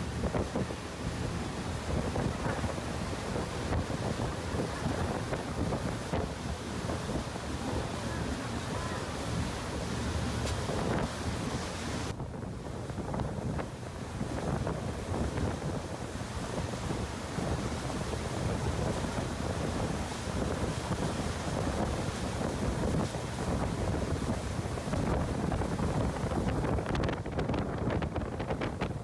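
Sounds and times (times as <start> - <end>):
boat wake water rushing: 0.0 - 29.0
wind buffeting microphone: 0.0 - 29.0.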